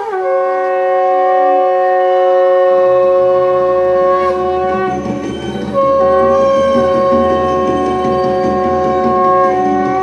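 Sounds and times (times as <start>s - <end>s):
conch shells blown: 0.0s - 10.0s.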